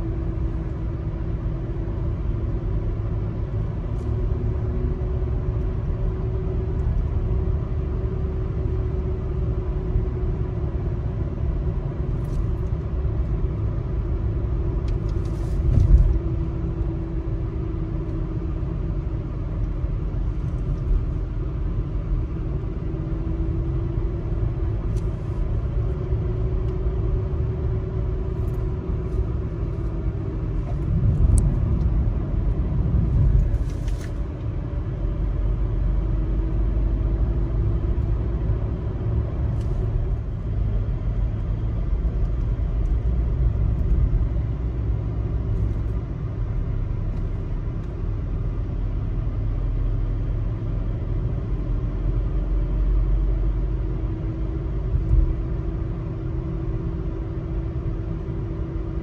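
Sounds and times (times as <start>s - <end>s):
tyre and engine rumble: 1.5s - 59.0s.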